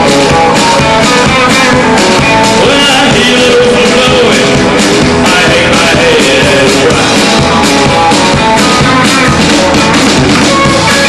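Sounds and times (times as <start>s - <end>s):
acoustic guitar strummed: 0.0s - 11.0s
drums: 0.0s - 11.0s
electric guitar: 0.0s - 11.0s.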